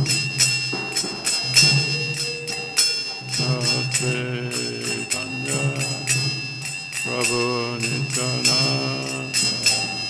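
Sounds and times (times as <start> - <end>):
brass hand cymbals striking: 0.0 - 10.0
devotional chant singing: 3.1 - 10.0.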